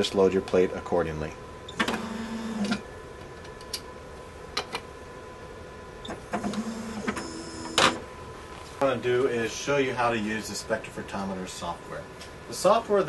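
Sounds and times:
drive motor whirring: 0:01.8 - 0:02.8, 0:06.4 - 0:07.8.

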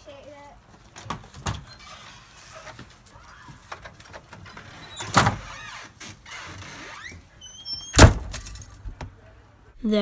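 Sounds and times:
door hinge squeak: 0:04.4 - 0:08.2.

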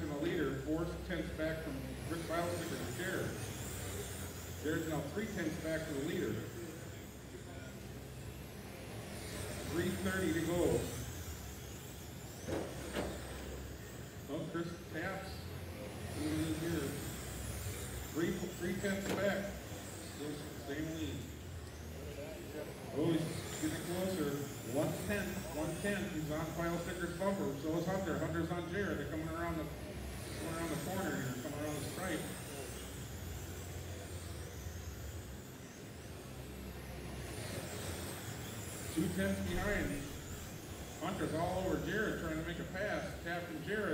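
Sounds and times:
low hall hum: 0:00.0 - 0:43.9
rc cars motor whine and tyre noise: 0:00.0 - 0:43.9.

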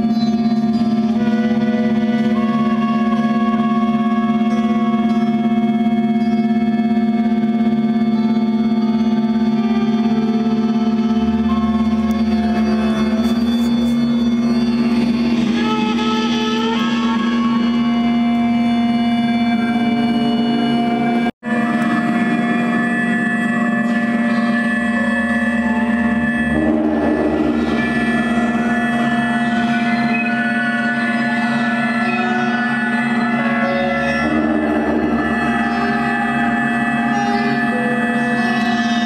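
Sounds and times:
electric guitar drone: 0:00.0 - 0:39.0
trumpet: 0:00.6 - 0:39.0.

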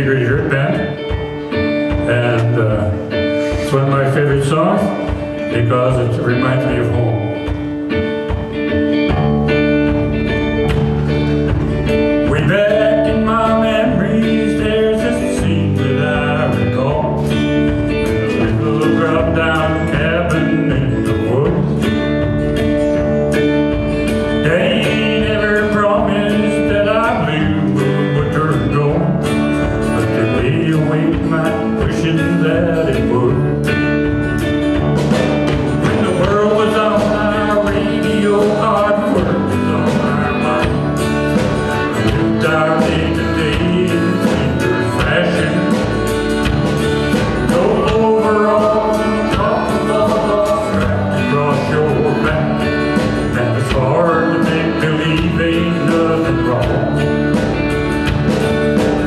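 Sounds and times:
acoustic guitars: 0:00.0 - 0:59.0
drums: 0:00.0 - 0:59.0
electric guitar: 0:00.0 - 0:59.0
accordion: 0:06.1 - 0:59.0.

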